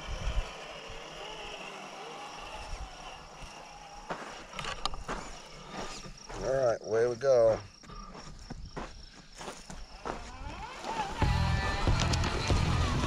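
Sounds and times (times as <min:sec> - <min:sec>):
small electric motor whine: 0:00.0 - 0:06.9, 0:07.7 - 0:13.0
toy car driving over gravel: 0:00.0 - 0:07.6, 0:09.4 - 0:13.0.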